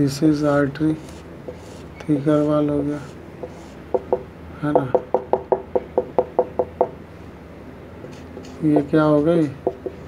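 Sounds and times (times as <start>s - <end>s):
marker tapping on whiteboard: 3.4s - 7.0s, 8.4s - 9.0s, 9.6s - 10.0s.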